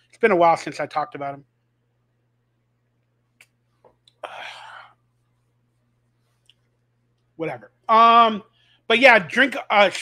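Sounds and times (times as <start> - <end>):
man exhaling: 4.2 - 5.0.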